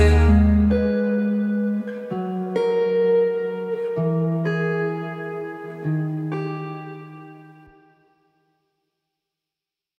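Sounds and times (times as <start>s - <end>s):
plucked guitar notes: 0.0s - 8.0s.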